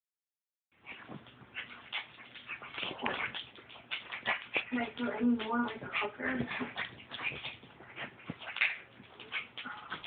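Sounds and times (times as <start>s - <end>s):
rustling: 0.8s - 10.0s.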